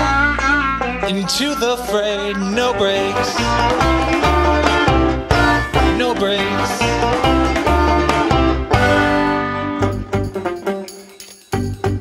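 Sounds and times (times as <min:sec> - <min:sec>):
pulsing bass line: 0:00.0 - 0:10.7
picked banjo: 0:00.0 - 0:11.1.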